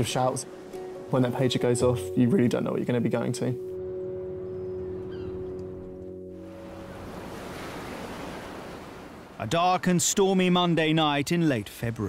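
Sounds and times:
sea and wind rushing: 0.0 - 2.8, 3.5 - 12.0
held music chord: 0.0 - 7.5.

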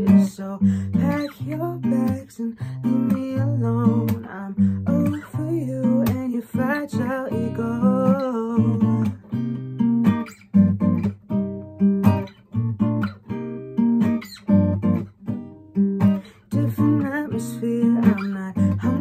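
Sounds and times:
person singing: 0.0 - 9.3, 16.2 - 19.0
acoustic guitar strumming: 0.0 - 19.0.

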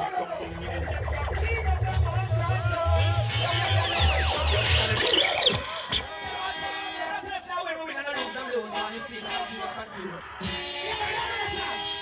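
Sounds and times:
crowd noise and voices: 0.0 - 12.0
reggae music with heavy bass: 0.0 - 12.0
falling swoop effect: 0.5 - 6.1.

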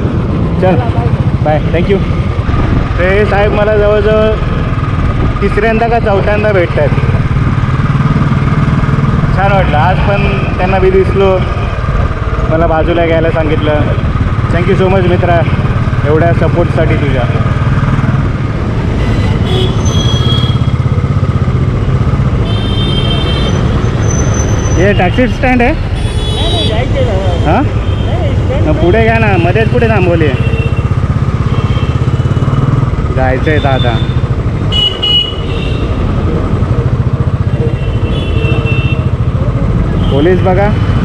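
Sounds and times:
motorcycle engine running: 0.0 - 41.0
wind and road rush: 0.0 - 41.0
vehicle horns honking: 18.9 - 20.8, 22.4 - 32.4, 33.5 - 36.1, 37.6 - 39.3, 39.9 - 41.0.

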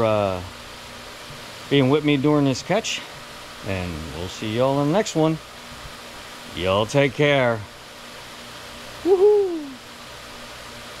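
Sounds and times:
short hoot gliding down: 9.0 - 9.8.

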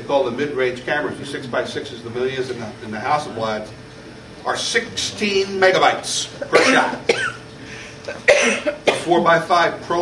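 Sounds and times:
man coughing: 6.4 - 7.4, 8.2 - 9.2.

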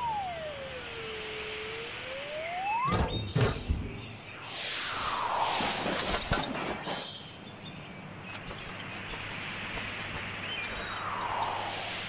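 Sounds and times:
swooping cartoon whistle: 0.0 - 3.2
rushing whoosh: 4.3 - 7.0, 10.8 - 12.0.

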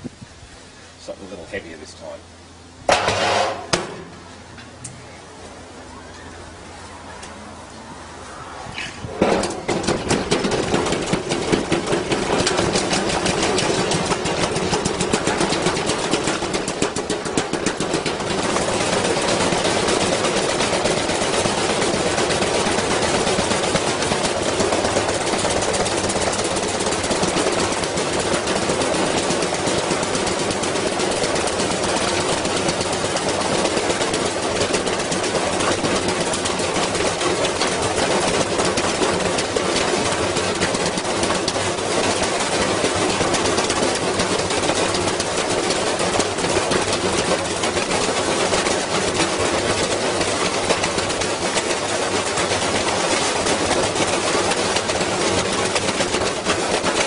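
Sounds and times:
washing machine spinning: 2.6 - 4.6, 9.0 - 57.0
load banging in drum: 2.8 - 4.7, 8.8 - 57.0
machine cabinet rattling: 9.0 - 57.0.

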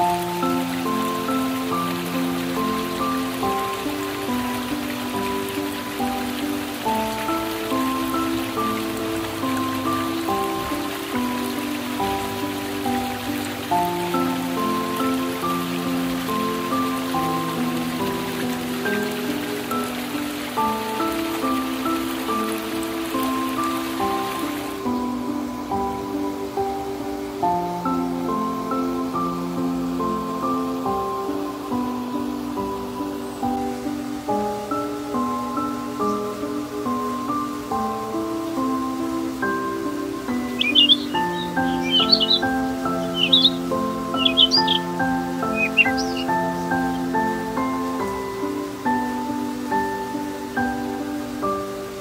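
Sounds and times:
rain-like hiss: 0.0 - 52.0
slow relaxing instrumental music: 0.0 - 52.0.

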